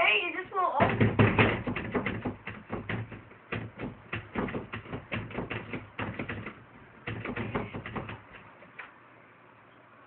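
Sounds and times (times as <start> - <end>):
fast sharp taps: 0.8 - 9.0.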